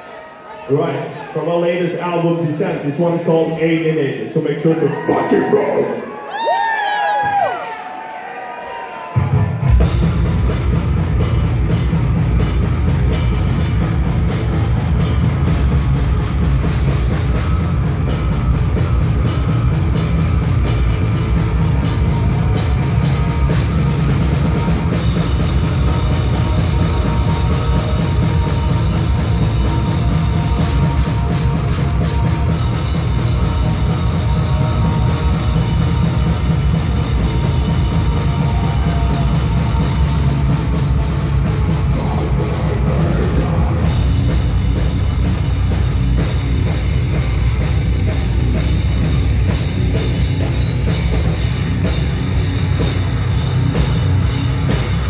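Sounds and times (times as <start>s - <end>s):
pounding drum kit: 4.9s - 7.7s, 8.9s - 55.0s
heavy metal band playing live: 9.2s - 55.0s.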